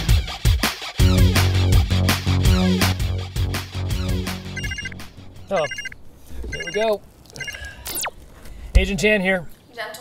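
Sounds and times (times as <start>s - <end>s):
music track: 0.0s - 5.8s
phone ringtone trilling: 4.5s - 8.1s.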